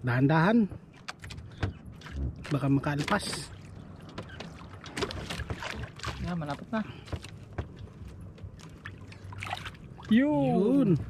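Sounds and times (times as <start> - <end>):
water sloshing around boat: 0.0 - 11.0
short splash: 8.9 - 10.1.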